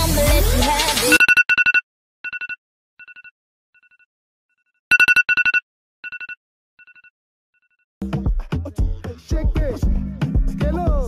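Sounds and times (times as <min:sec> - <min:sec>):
dance music: 0:00.0 - 0:01.2, 0:08.0 - 0:11.0
trilling telephone ringtone: 0:01.1 - 0:04.1, 0:04.9 - 0:07.8.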